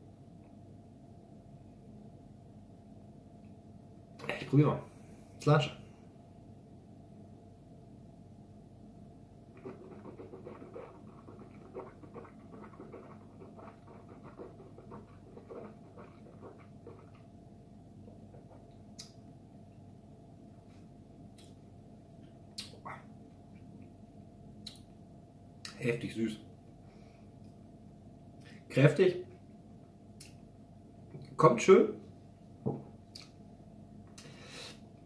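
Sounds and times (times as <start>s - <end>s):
faint electrical hum: 0.0s - 35.0s
mouth click: 19.0s - 19.2s, 22.5s - 23.0s, 24.6s - 24.9s, 33.1s - 33.4s.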